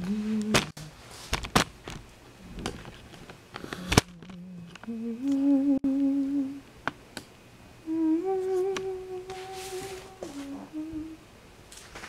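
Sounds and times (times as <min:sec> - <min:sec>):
person humming: 0:00.0 - 0:01.0, 0:03.6 - 0:06.7, 0:07.8 - 0:11.3.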